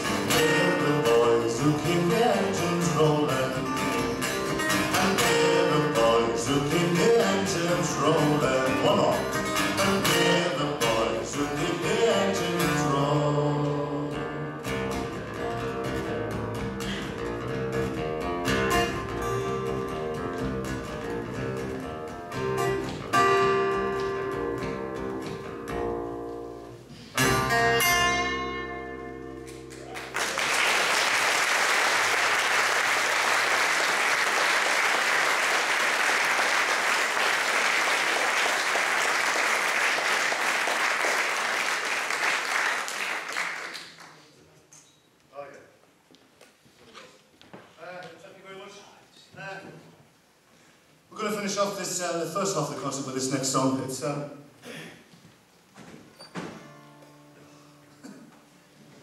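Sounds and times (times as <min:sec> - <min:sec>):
acoustic guitars playing folk song: 0:00.0 - 0:30.2, 0:56.2 - 0:59.0
audience applause: 0:29.7 - 0:44.2.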